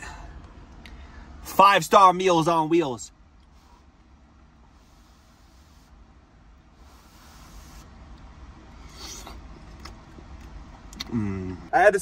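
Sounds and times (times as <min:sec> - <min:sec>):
low steady rumble: 0:00.0 - 0:12.0
short breathy hiss: 0:03.5 - 0:03.9, 0:04.7 - 0:06.0, 0:06.7 - 0:07.9
man chewing: 0:08.8 - 0:11.3.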